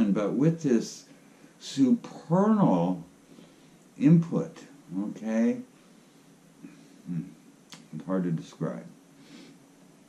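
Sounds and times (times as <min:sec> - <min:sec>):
man murmuring hmm: 0:06.6 - 0:07.4.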